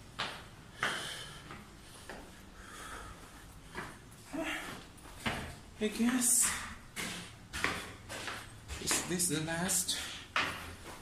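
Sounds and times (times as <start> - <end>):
footsteps on concrete stairs: 0.0 - 11.0
man's voice: 5.8 - 6.7, 8.8 - 10.1.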